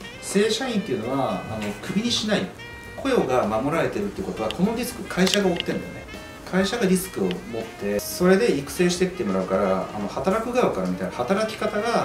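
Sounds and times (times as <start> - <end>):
quiet background music: 0.0 - 12.0
person speaking: 3.0 - 8.0.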